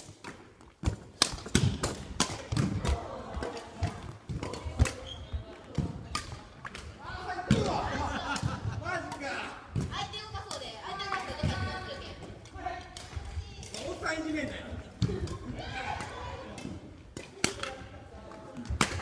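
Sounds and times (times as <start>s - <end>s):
rackets hitting shuttlecock: 0.0s - 14.0s, 14.9s - 19.0s
voices of players: 2.2s - 19.0s.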